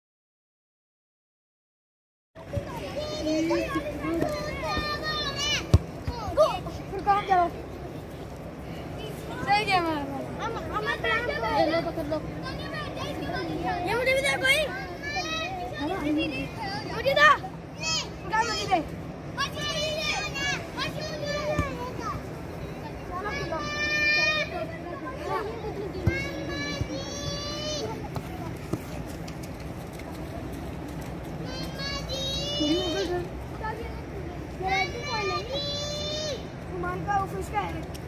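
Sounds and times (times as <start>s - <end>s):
children calling and chattering: 2.4s - 38.0s.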